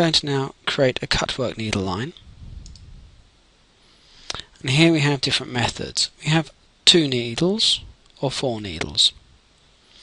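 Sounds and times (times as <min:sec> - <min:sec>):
low room hum: 0:00.0 - 0:10.0
computer mouse click: 0:02.6 - 0:02.9.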